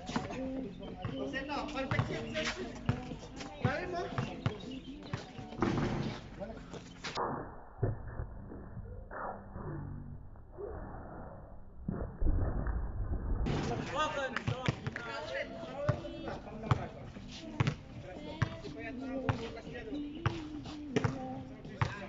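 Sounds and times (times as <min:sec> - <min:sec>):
players' voices: 0:00.0 - 0:07.4, 0:13.5 - 0:22.0.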